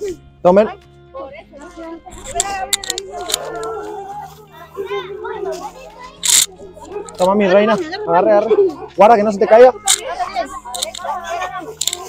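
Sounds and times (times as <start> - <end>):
children and adults talking: 0.0 - 12.0.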